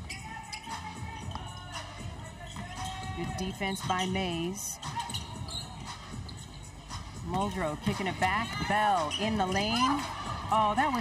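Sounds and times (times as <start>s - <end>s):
faint music: 0.0s - 11.0s.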